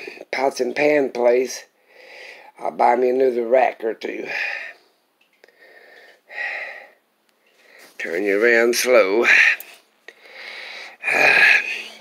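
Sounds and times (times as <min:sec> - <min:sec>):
man breathing: 0:01.8 - 0:02.6, 0:04.3 - 0:08.0, 0:09.2 - 0:12.0.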